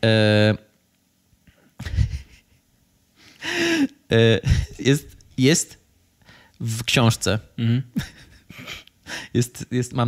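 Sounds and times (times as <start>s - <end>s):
person speaking: 3.4s - 5.8s
breathing into microphone: 6.2s - 6.6s.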